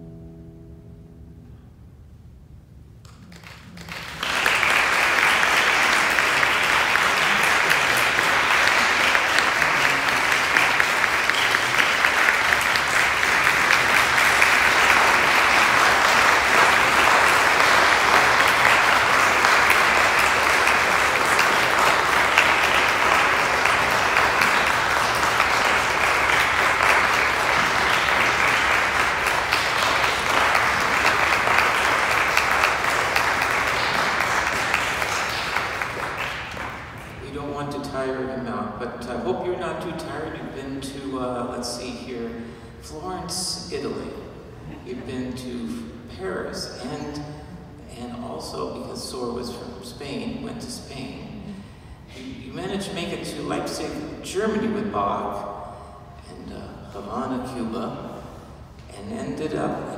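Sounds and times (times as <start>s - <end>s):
audience applause: 3.1s - 37.4s.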